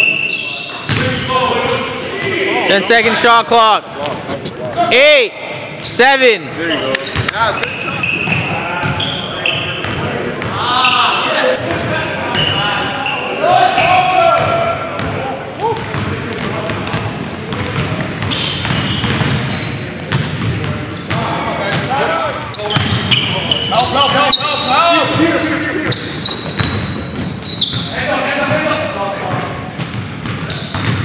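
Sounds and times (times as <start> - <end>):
players calling and shouting: 0.0 - 31.0
basketball bouncing on hardwood: 29.8 - 31.0.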